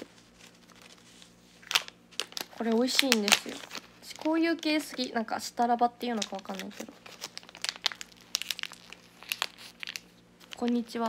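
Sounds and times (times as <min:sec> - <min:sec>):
plastic wrapper crinkling and tearing: 0:00.0 - 0:05.3, 0:06.0 - 0:11.0.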